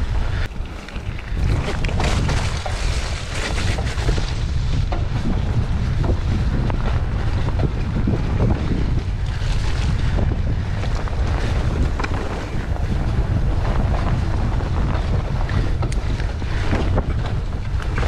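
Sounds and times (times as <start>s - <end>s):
bike knocks and rattles: 0.0s - 18.0s
wind buffeting microphone: 0.0s - 18.0s.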